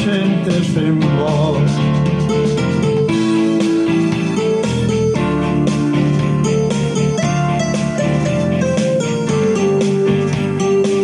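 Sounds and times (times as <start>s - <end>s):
plucked guitars playing: 0.0s - 11.0s.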